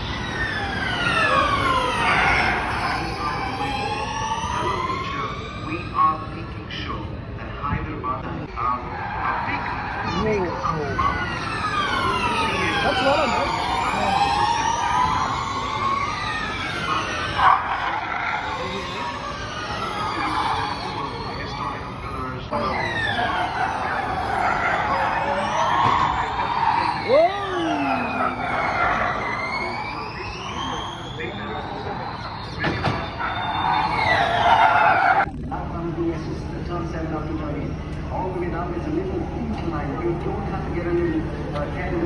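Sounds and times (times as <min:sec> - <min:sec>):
electric race cars whining past: 0:00.0 - 0:06.5, 0:08.2 - 0:42.0.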